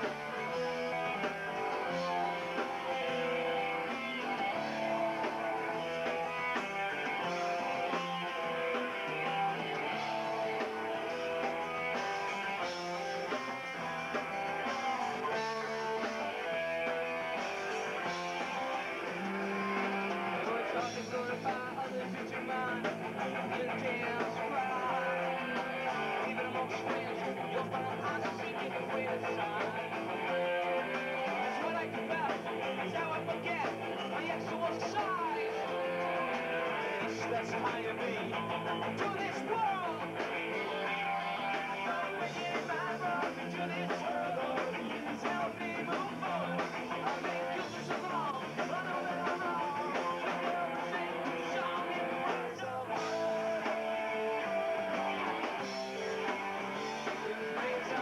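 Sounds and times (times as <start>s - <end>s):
electric guitar: 0.0s - 58.0s
rock band playing: 0.0s - 58.0s.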